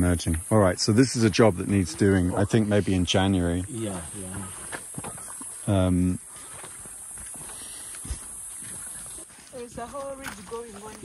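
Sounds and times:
footsteps on sandy path: 3.9 - 11.0.

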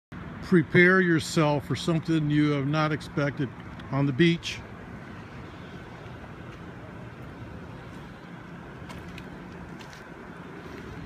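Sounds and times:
outdoor background noise: 0.1 - 11.0
steady low hum: 0.2 - 11.0.

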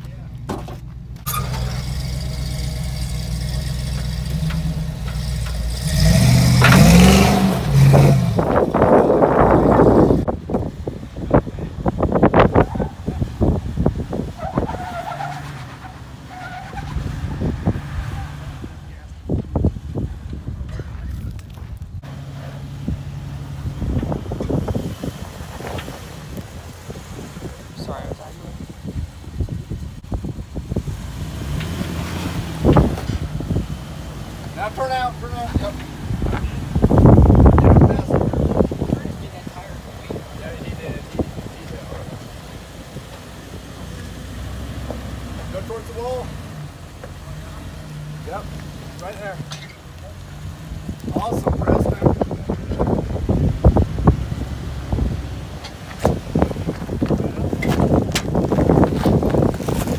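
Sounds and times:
car engine revving: 1.2 - 59.9
sharp knocks and crunches: 55.7 - 59.9.

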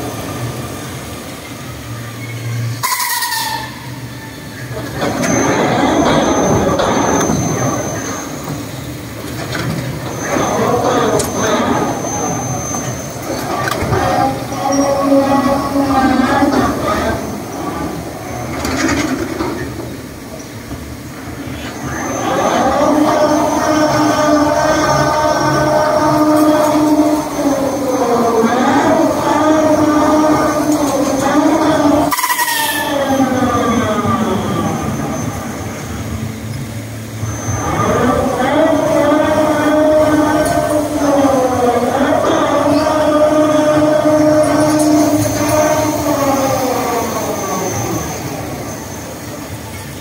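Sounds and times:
ride machinery whining: 0.0 - 50.0.

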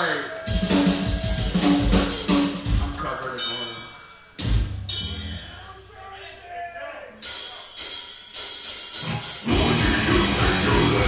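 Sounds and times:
cymbals struck: 0.5 - 5.6, 7.2 - 9.9.

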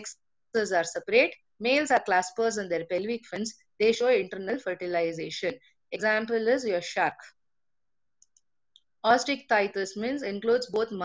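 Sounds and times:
computer mouse clicks: 8.2 - 9.0.

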